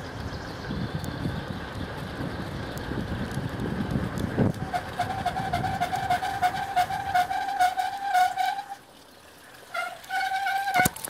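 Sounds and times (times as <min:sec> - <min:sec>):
wind on microphone: 0:00.0 - 0:07.4
freewheel ticking: 0:00.0 - 0:08.7
bicycle brakes squealing: 0:04.6 - 0:08.8, 0:09.7 - 0:11.0.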